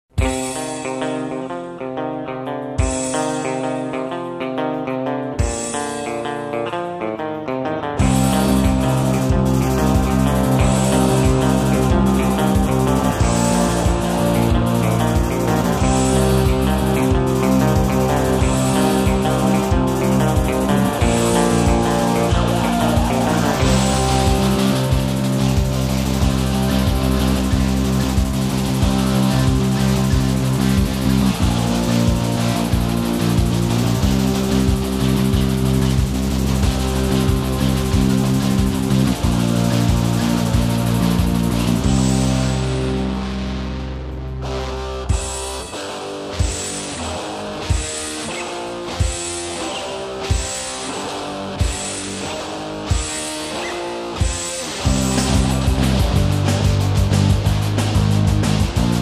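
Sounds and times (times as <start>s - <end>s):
rock band playing: 0.1s - 59.0s.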